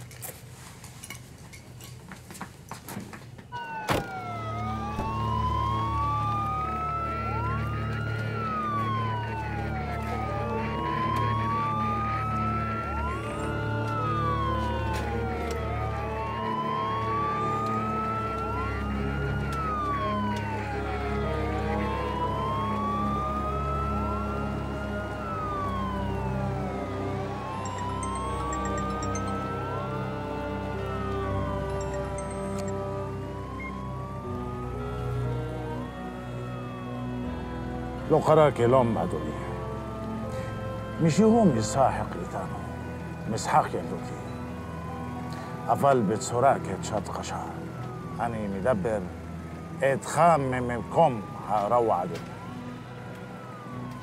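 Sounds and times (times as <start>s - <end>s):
police sirens wailing: 3.5s - 54.0s
film music with low notes: 3.7s - 54.0s.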